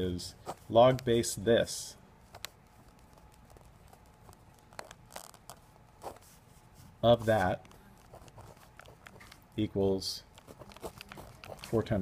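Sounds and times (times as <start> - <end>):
pen scratching on paper: 2.3 - 6.6, 7.2 - 9.3, 10.3 - 11.9
sharp pen ticks: 2.4 - 5.6.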